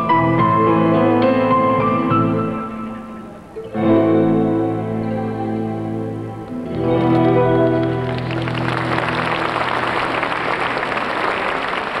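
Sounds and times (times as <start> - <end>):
held music chord: 0.0 - 10.3
audience applauding: 7.0 - 12.0.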